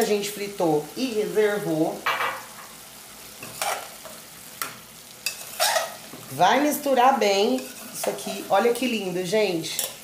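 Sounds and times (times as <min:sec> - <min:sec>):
food sizzling in a pot: 0:00.0 - 0:10.0
spoon scraping a pot: 0:03.4 - 0:03.9, 0:05.2 - 0:06.0, 0:07.5 - 0:08.4.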